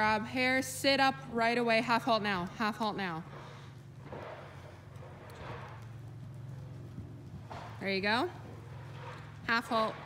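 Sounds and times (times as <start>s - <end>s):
steady low hum: 0.0s - 10.0s
horse hoofbeats on sand: 1.8s - 10.0s.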